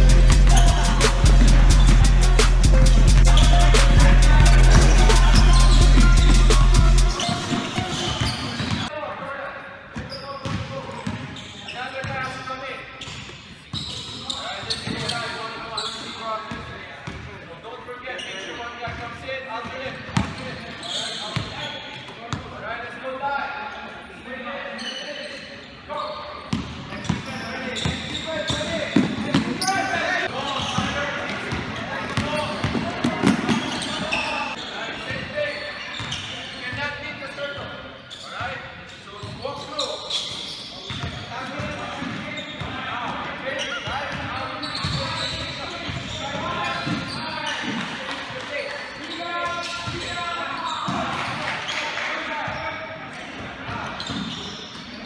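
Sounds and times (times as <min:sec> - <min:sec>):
players calling: 0:00.0 - 0:09.0, 0:26.0 - 0:52.7.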